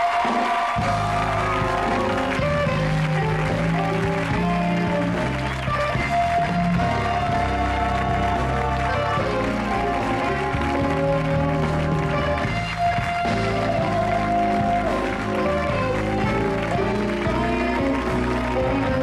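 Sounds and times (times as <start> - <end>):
band playing rock music: 0.0 - 19.0.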